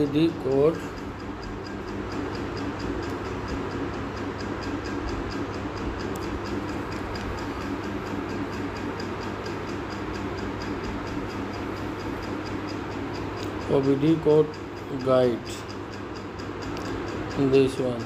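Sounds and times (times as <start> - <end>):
fast faint ticking: 0.0 - 18.0.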